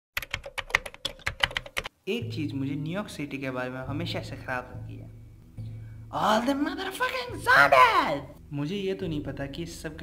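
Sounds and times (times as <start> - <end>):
keyboard typing clicks: 0.2 - 1.9.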